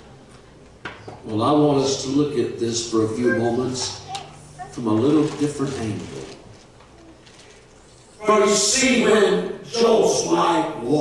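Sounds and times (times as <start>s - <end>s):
man preaching over amplification: 1.4s - 4.1s, 8.2s - 11.0s.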